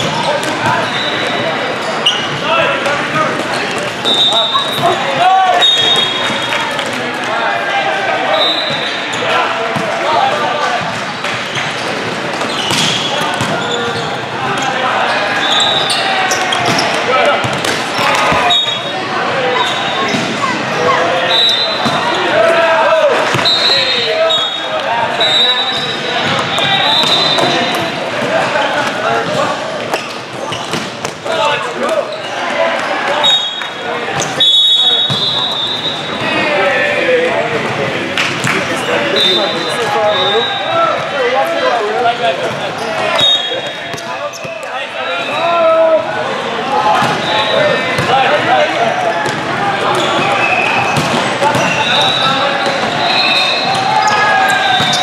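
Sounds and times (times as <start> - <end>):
echoing crowd voices: 0.0 - 55.0.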